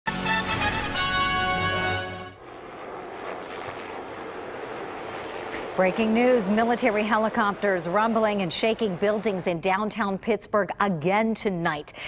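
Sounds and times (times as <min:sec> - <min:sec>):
news theme music: 0:00.1 - 0:02.4
low-flying helicopter rumble: 0:00.6 - 0:12.0.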